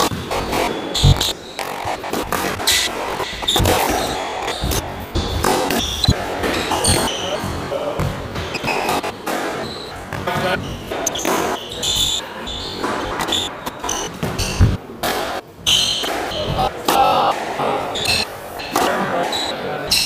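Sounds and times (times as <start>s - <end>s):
shoes squeaking on wooden floor: 0.0s - 14.8s.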